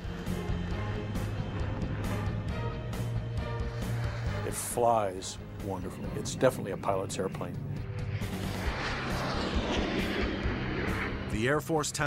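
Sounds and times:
jet flying: 0:00.0 - 0:12.0.

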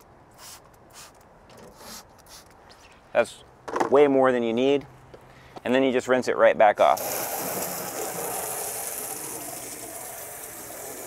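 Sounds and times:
spray bottle spritzing: 0:00.4 - 0:02.5, 0:07.0 - 0:11.0.

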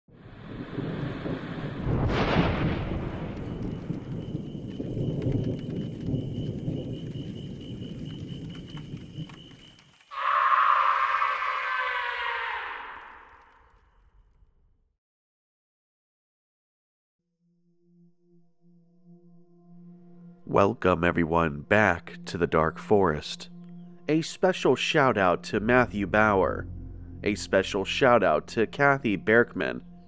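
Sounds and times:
rolling thunder: 0:00.1 - 0:09.6
thunder crack: 0:00.2 - 0:09.4
sharp crackles: 0:01.4 - 0:11.2.

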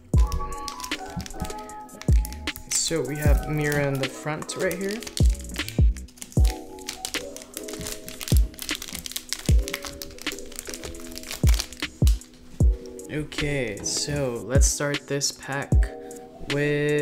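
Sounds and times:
foil wrapper crinkling: 0:00.0 - 0:13.0
background music with held chords: 0:00.0 - 0:17.0.

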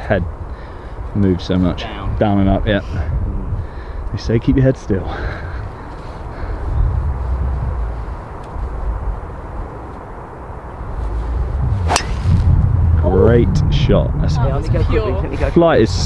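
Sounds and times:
wind rumble on microphone: 0:00.0 - 0:16.0
golf driver striking ball: 0:11.8 - 0:12.4.

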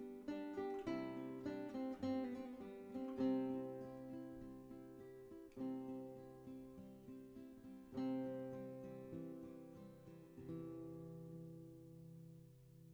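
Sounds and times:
acoustic guitar plucked notes: 0:00.0 - 0:12.8.

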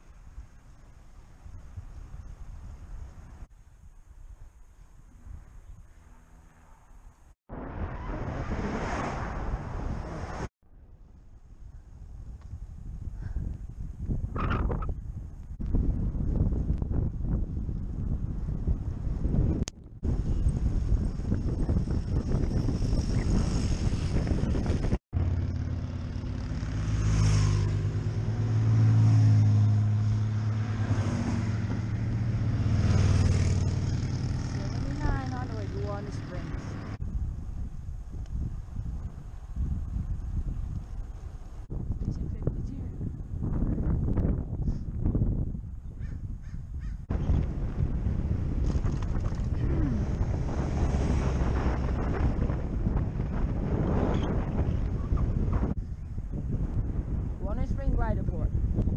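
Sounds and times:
road noise: 0:00.0 - 0:58.9
wind rushing over microphone: 0:01.2 - 0:06.1, 0:07.2 - 0:58.9
passing cars: 0:05.1 - 0:10.5, 0:20.1 - 0:37.2, 0:47.1 - 0:57.4
heavy vehicles passing: 0:25.2 - 0:37.0, 0:49.5 - 0:53.9.

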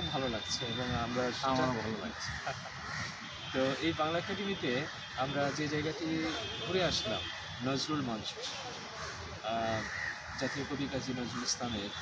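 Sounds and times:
man talking: 0:00.0 - 0:02.6, 0:03.6 - 0:08.4, 0:09.4 - 0:12.0
outdoor background noise: 0:00.0 - 0:12.0.

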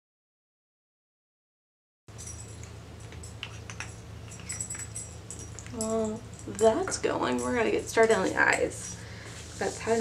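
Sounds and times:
steady low hum: 0:02.1 - 0:10.0.

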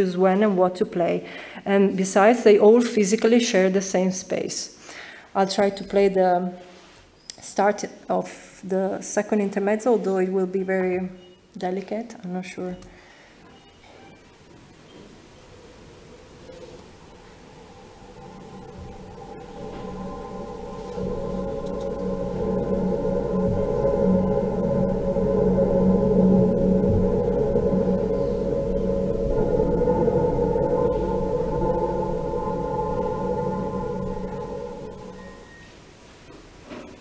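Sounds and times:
electronic drone music over speakers: 0:16.2 - 0:35.7.

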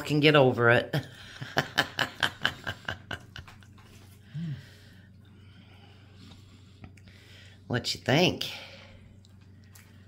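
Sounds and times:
man chewing: 0:03.0 - 0:07.6, 0:09.0 - 0:10.0.

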